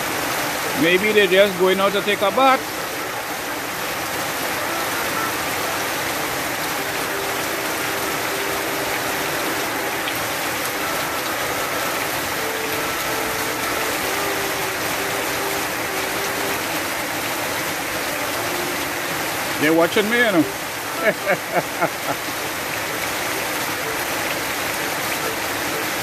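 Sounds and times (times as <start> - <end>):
heavy rain falling: 0.0 - 26.0
honeybees buzzing: 3.6 - 19.7.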